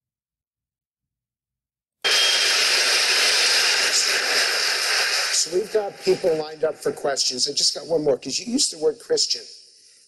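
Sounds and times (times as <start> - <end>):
loud rushing hiss: 2.0 - 7.5.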